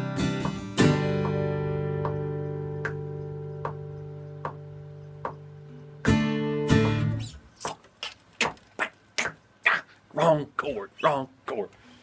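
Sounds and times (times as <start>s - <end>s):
acoustic guitar chord: 0.0s - 4.3s
guitar strums: 0.0s - 7.8s
faint ticks: 1.2s - 6.1s.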